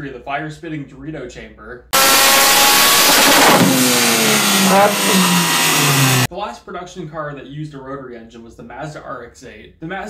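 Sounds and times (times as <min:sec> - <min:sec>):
rotary engine revving hard: 0:02.0 - 0:06.3.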